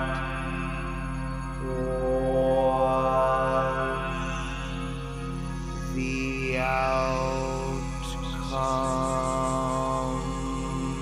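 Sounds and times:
electronic orchestral drone music: 0.0 - 11.0.

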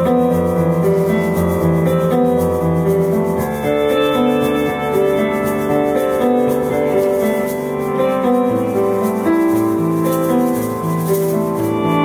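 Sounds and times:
keyboard chords: 0.0 - 12.0
shaker rhythm: 0.0 - 12.0.

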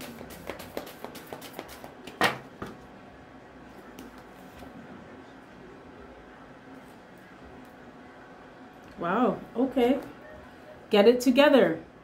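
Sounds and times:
cards being shuffled: 0.0 - 2.4.

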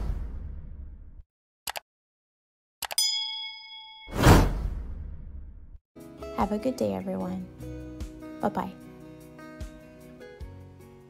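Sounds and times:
bell-like ding: 3.0 - 4.5.

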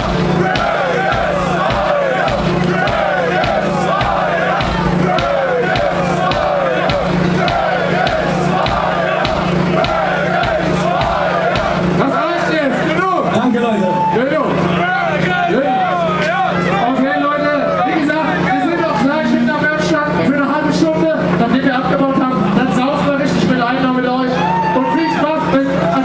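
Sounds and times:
crowd chanting in unison: 0.0 - 12.8
steady beat: 0.0 - 12.8
crowd shouting: 0.0 - 19.6, 24.1 - 26.0.

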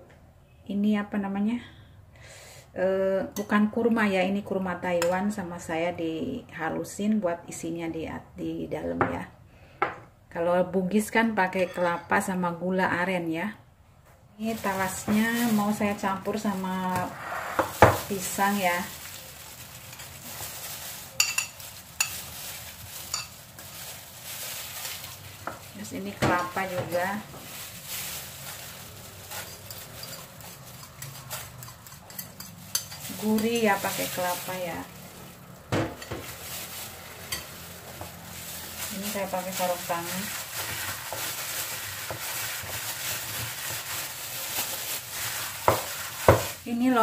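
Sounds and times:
plastic glove crinkling: 14.4 - 47.0.

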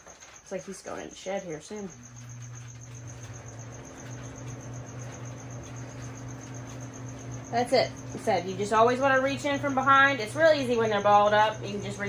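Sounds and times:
steady low hum: 0.4 - 12.0.

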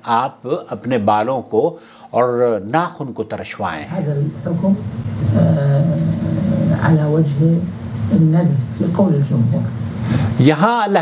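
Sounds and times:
man humming: 5.2 - 7.0.

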